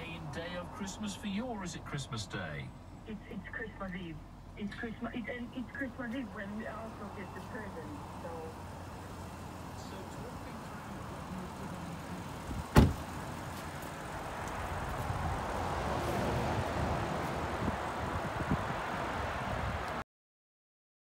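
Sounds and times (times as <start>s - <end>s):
outdoor background noise: 0.0s - 20.0s
car door shutting: 12.4s - 13.2s.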